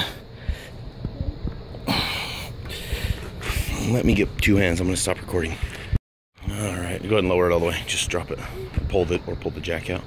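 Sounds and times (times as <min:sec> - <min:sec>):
man breathing and exhaling: 0:00.0 - 0:03.9, 0:05.5 - 0:06.0.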